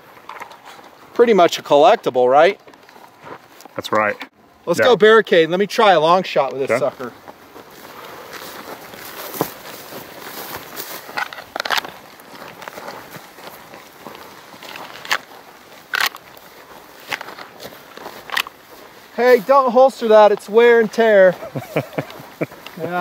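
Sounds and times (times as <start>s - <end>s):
footsteps through dry grass: 0.0s - 3.8s, 5.8s - 23.0s.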